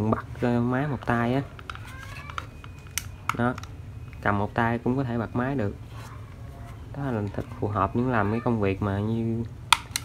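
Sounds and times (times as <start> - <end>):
plastic clicks and taps: 1.5 - 4.2.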